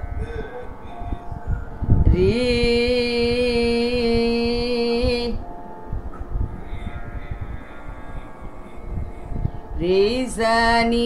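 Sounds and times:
faint steady drone: 0:00.0 - 0:11.0
low rumbling noise: 0:00.0 - 0:11.0.

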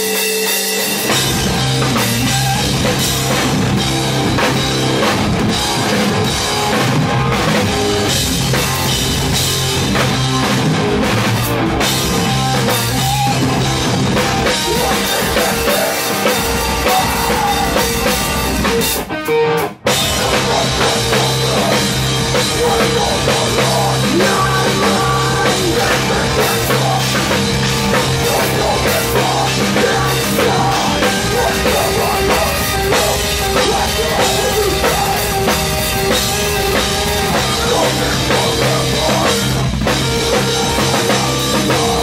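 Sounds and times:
metal band playing: 0:00.0 - 0:42.0.

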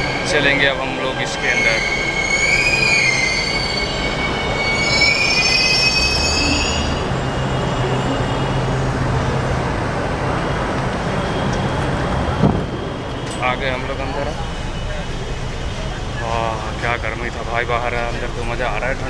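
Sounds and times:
train brakes squealing: 0:00.0 - 0:09.6, 0:11.0 - 0:18.9
low train hum and rumble: 0:00.0 - 0:19.0.

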